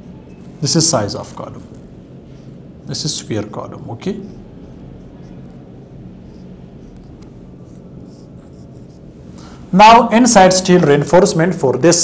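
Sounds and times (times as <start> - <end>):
low room hum: 0.0 - 12.0
marker squeaking on whiteboard: 4.2 - 9.1.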